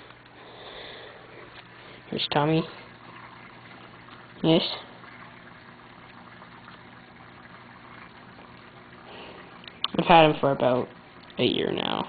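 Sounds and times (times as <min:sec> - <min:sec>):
aquarium water trickling and bubbling: 0:00.0 - 0:12.0
faint hum: 0:00.0 - 0:12.0.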